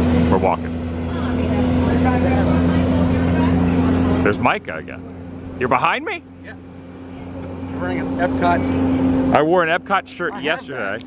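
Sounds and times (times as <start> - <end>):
low engine hum: 0.0 - 11.0.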